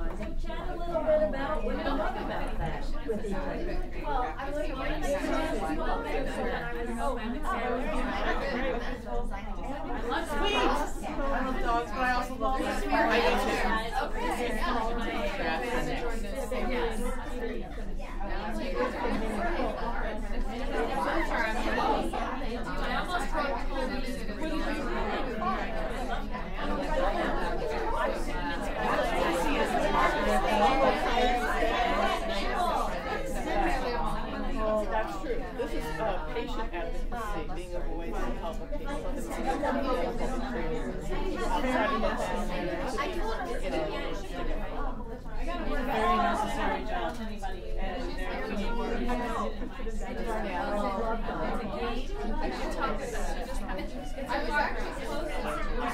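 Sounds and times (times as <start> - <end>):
chatter of many voices: 0.0 - 55.9
women talking babble: 0.0 - 55.9.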